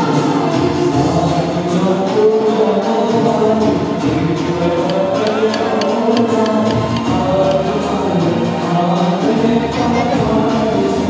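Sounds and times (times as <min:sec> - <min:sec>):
musical accompaniment: 0:00.0 - 0:11.0
voices singing together: 0:00.0 - 0:11.0.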